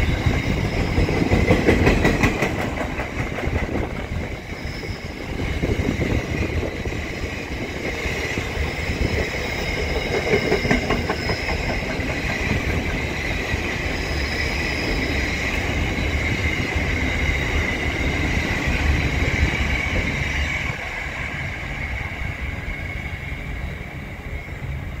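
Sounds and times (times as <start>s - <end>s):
train wheels rumbling on rails: 0.0s - 25.0s.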